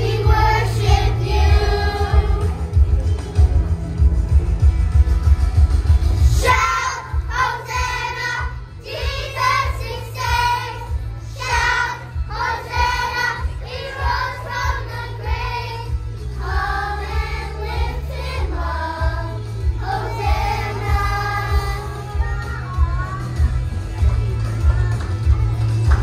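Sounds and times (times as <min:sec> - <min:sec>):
children's choir singing: 0:00.0 - 0:02.8, 0:06.4 - 0:22.5
recorded music with heavy bass: 0:00.0 - 0:26.0.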